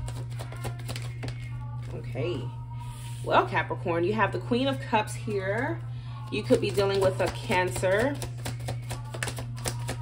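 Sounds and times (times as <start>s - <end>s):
cards being shuffled: 0.0s - 2.0s, 6.7s - 10.0s
steady low hum: 0.0s - 9.9s.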